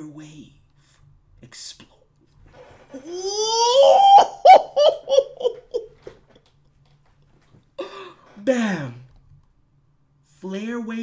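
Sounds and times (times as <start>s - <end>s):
man laughing: 3.0s - 6.2s
man shouting: 3.1s - 4.9s.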